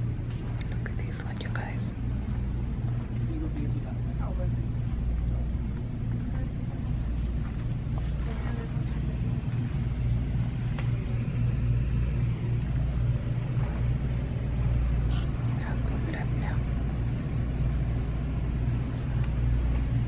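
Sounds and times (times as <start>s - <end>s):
low rumble: 0.0s - 20.0s.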